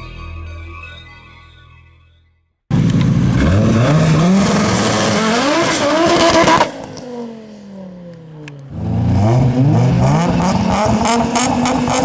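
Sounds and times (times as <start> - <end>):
car engine revving: 2.7 - 12.0.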